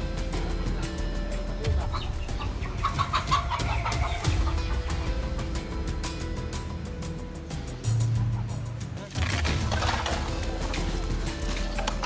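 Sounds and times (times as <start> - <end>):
background music: 0.0 - 12.0
chicken clucking: 1.7 - 5.2.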